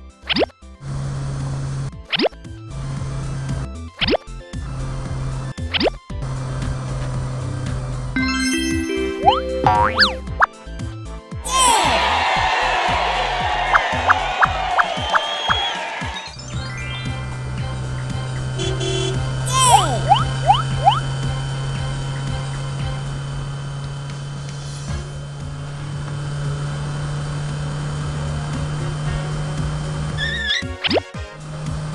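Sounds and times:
musical notes: 0:08.2 - 0:10.6
children's background music: 0:08.2 - 0:10.7, 0:11.4 - 0:18.4
rising springy boing sweeps: 0:09.2 - 0:10.5
rising cartoon whistle effects: 0:13.7 - 0:17.2, 0:19.6 - 0:21.0, 0:30.2 - 0:31.1.

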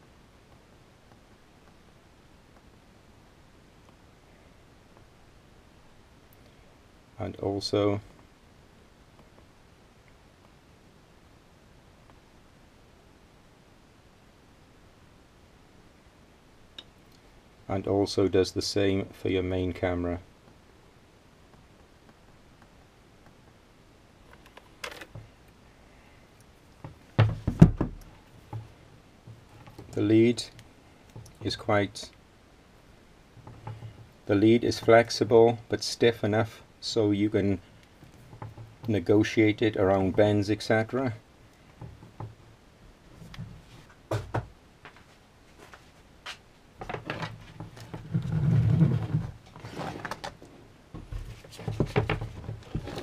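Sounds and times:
sharp knocks on wooden bench: 0:26.8 - 0:28.7.

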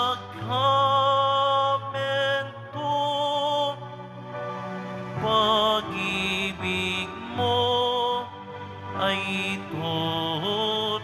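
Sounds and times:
slow hymn singing: 0:00.0 - 0:11.0.

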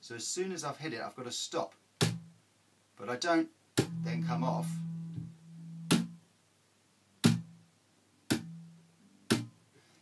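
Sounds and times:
percussive bass string hits: 0:03.8 - 0:06.2, 0:07.2 - 0:07.6, 0:08.3 - 0:08.7
short low bass notes: 0:03.8 - 0:06.2
held low bass note: 0:03.9 - 0:06.2, 0:08.4 - 0:08.9.

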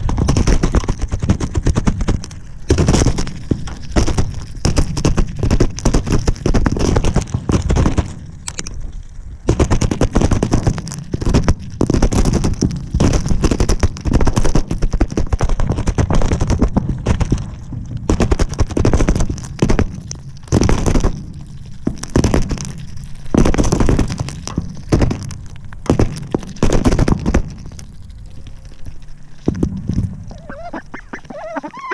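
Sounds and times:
ducks pecking at feed in plastic bowl: 0:00.0 - 0:08.2, 0:09.5 - 0:31.9.

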